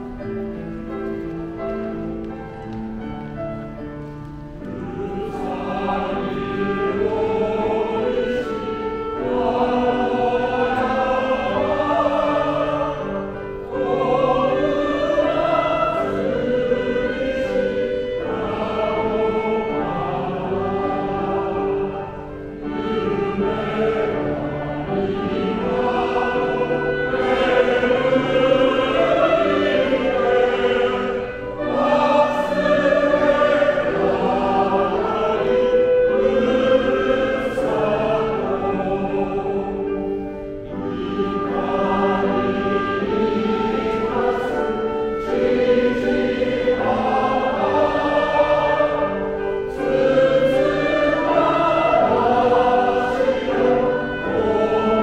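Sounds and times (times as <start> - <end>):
men's choir singing in harmony: 0.0 - 55.0.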